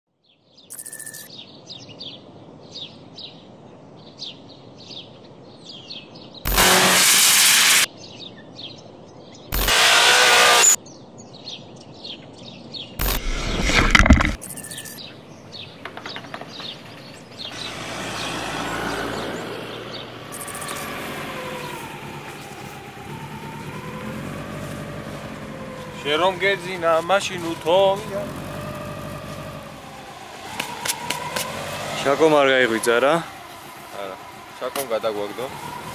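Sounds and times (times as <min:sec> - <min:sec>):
small birds chirping: 0:00.2 - 0:06.5, 0:07.9 - 0:09.7, 0:10.8 - 0:13.8, 0:14.4 - 0:35.9
snow rushing bursts: 0:06.5 - 0:07.9, 0:24.2 - 0:35.9.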